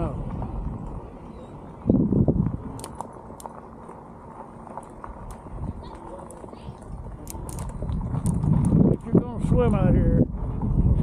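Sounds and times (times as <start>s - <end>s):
bike tyres rumbling on gravel: 0.0s - 11.0s.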